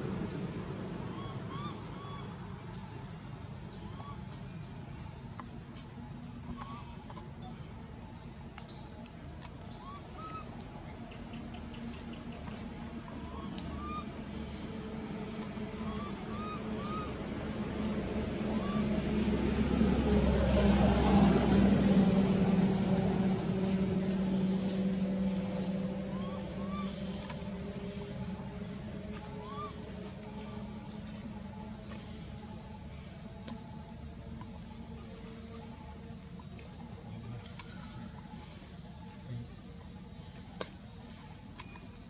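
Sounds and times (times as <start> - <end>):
vehicle engine hum passing: 0.0 - 42.0.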